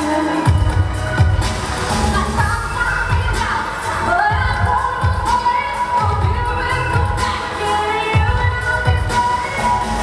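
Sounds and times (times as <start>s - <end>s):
live pop band playing: 0.0s - 10.0s.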